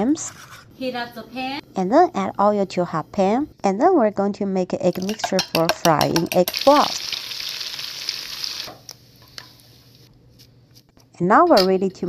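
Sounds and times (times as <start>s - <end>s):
egg sizzling in hot oil: 6.2s - 9.6s.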